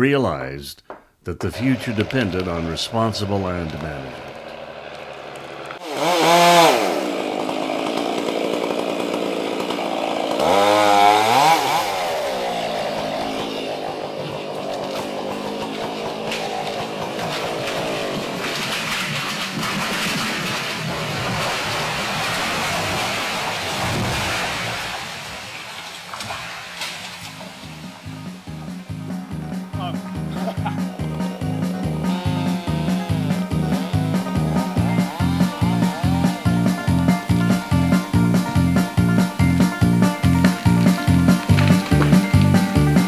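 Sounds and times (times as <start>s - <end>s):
chainsaw cutting timber: 1.4s - 43.0s.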